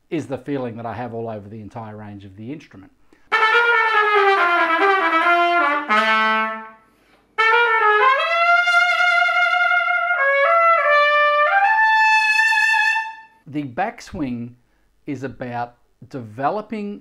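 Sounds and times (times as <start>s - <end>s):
solo trumpet playing: 3.3s - 13.4s.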